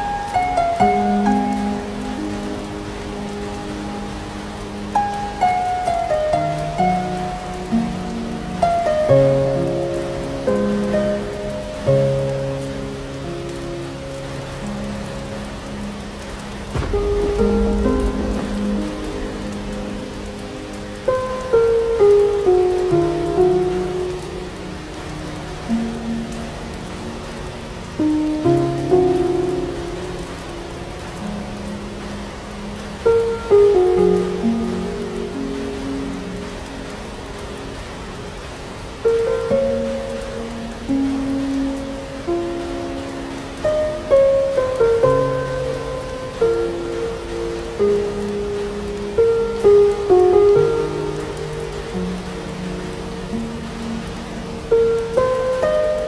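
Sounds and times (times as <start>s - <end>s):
gentle instrumental music: 0.0s - 56.0s
steady rain: 0.0s - 56.0s
low rumble of thunder: 16.1s - 21.7s.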